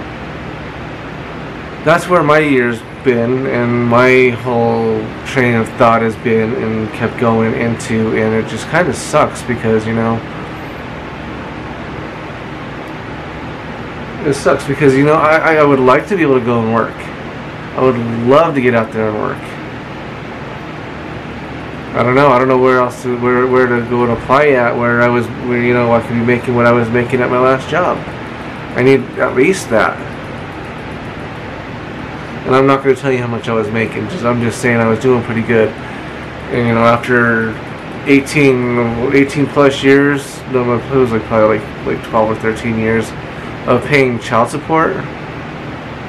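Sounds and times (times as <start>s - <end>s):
constant hiss: 0.0s - 46.0s
man speaking: 1.8s - 10.3s, 14.2s - 17.2s, 17.8s - 19.6s, 21.9s - 30.3s, 32.4s - 45.1s.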